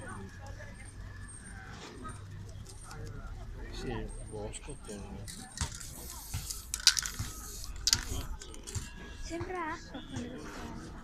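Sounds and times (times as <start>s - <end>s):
metallic clinks of spray cans: 5.2s - 8.9s
spray can hissing: 5.6s - 8.8s.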